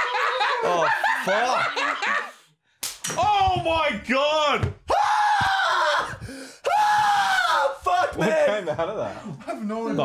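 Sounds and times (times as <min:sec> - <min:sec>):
hard slap: 0:02.8 - 0:03.2
man screaming in pain: 0:04.9 - 0:08.2.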